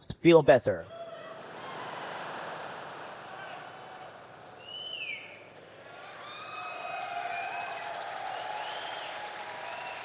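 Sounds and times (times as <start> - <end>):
people cheering: 0.9 - 10.0
audience clapping: 2.8 - 10.0.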